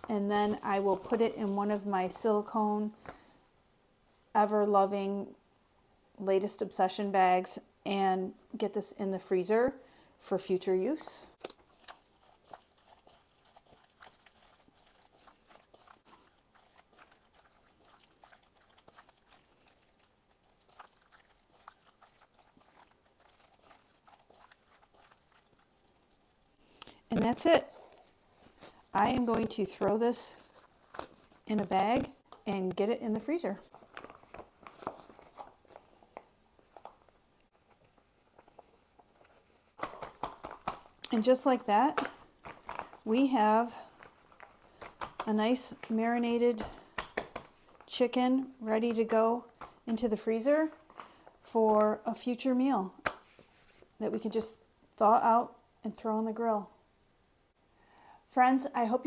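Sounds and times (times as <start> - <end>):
wet squishing of hands kneading meat: 11.4 - 27.0, 33.6 - 41.2.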